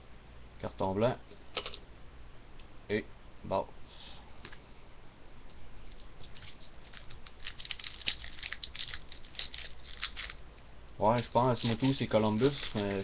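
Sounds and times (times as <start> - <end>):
foil wrapper crinkling: 5.9 - 10.4, 11.2 - 13.0.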